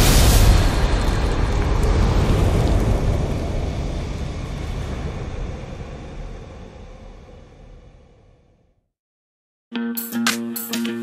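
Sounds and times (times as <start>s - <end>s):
low noisy rumble of a boom: 0.0s - 8.8s.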